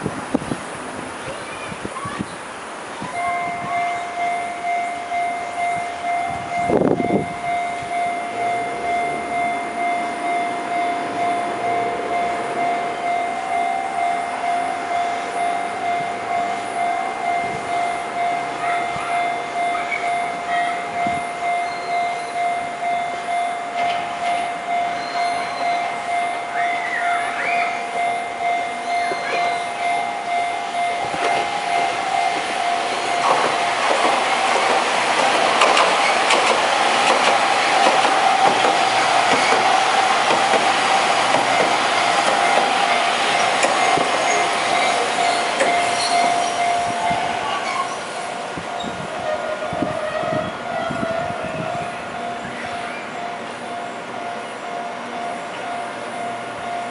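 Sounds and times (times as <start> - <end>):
tram running over rails: 0.0 - 56.9
level crossing warning bell: 3.0 - 56.9.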